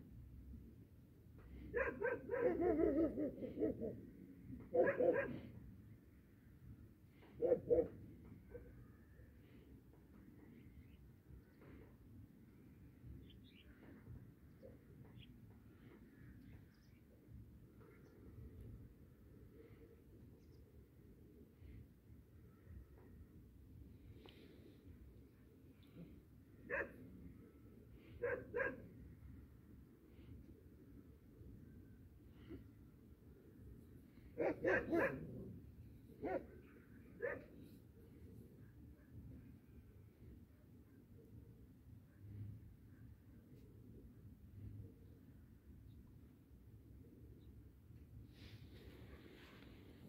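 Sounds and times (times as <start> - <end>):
puppy barking: 1.7 - 3.9, 4.7 - 5.4, 7.4 - 7.9, 26.7 - 27.0, 28.2 - 28.8, 34.4 - 35.4, 36.2 - 36.6, 37.2 - 37.5.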